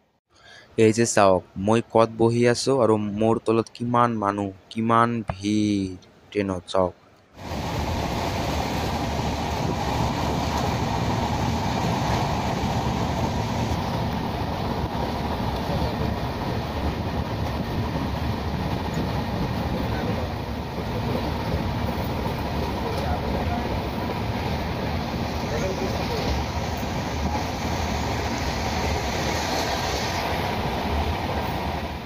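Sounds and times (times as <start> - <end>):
train wheels rumbling and rattling: 7.4 - 32.0.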